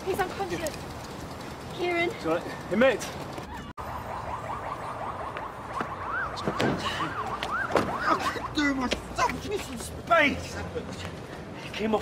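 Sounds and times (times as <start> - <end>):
siren in rising and falling sweeps: 3.4 - 8.7.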